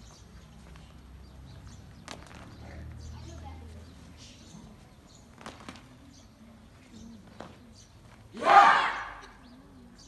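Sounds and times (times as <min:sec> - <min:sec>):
distant voices chattering: 0:00.0 - 0:10.0.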